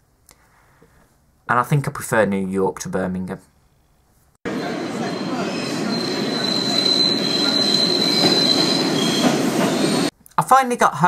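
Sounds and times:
subway train rumble: 0:04.5 - 0:10.1
high-pitched wheel squeal: 0:04.6 - 0:10.1.

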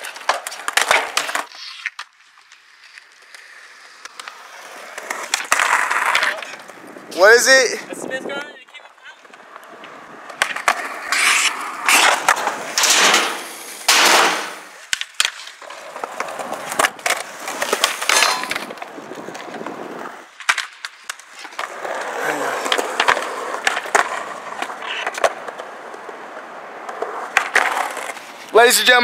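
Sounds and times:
skateboard clacks: 0:00.0 - 0:06.8, 0:08.4 - 0:28.4
skateboard wheels rolling on concrete: 0:00.0 - 0:29.0.

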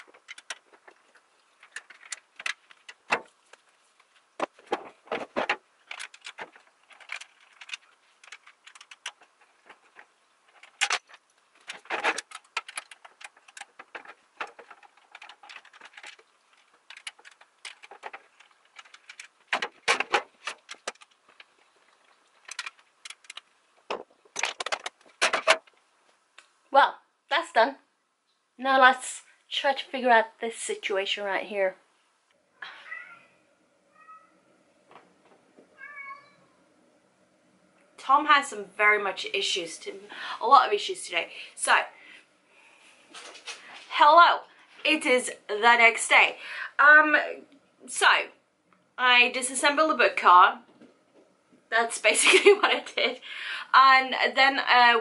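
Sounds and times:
cat meowing: 0:32.7 - 0:34.4, 0:35.8 - 0:36.6.

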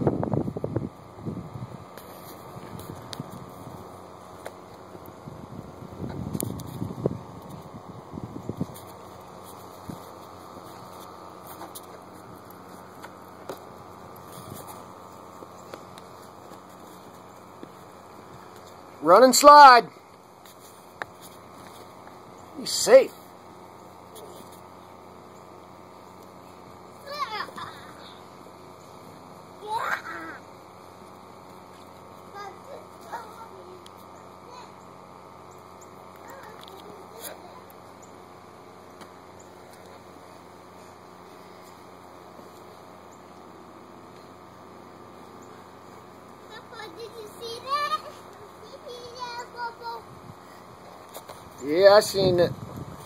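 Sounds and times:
wind thumps on microphone: 0:05.2 - 0:08.8, 0:52.5 - 0:53.0
child shouting: 0:27.0 - 0:27.9, 0:29.6 - 0:30.4, 0:46.5 - 0:50.0.

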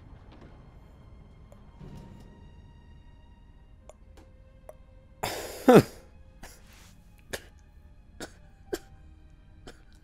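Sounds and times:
man coughing: 0:05.2 - 0:06.0.

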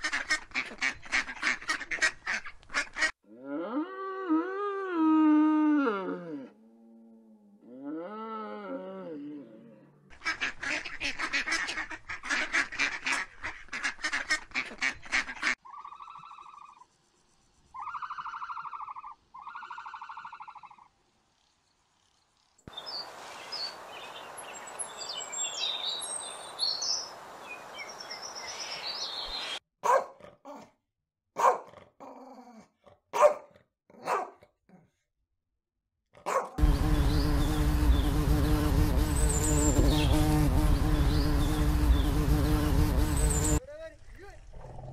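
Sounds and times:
rapid rasping animal calls: 0:17.8 - 0:20.9, 0:36.6 - 0:43.6
sharp animal calls: 0:17.8 - 0:20.9
bird chirping: 0:22.7 - 0:29.6, 0:36.6 - 0:43.6
bee buzzing loudly: 0:36.6 - 0:43.6.

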